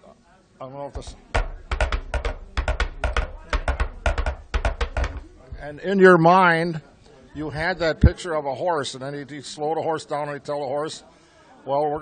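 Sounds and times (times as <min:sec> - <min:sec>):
cups clopping like hoofbeats: 0:01.0 - 0:05.8.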